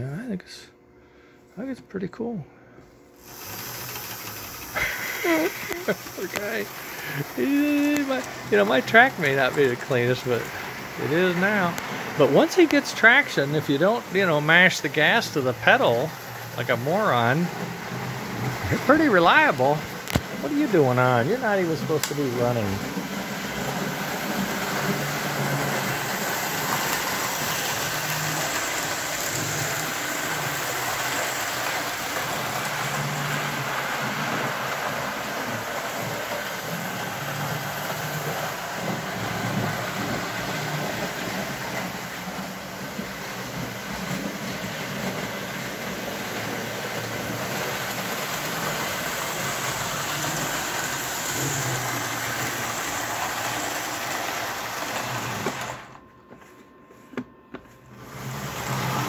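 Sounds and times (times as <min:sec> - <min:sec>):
model train running on metal track: 0:03.2 - 0:55.9.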